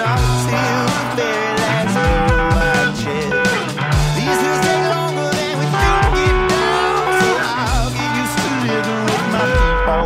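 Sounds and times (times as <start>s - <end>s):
electric guitar lead lines: 0.0s - 10.0s
rock band playing: 0.0s - 10.0s.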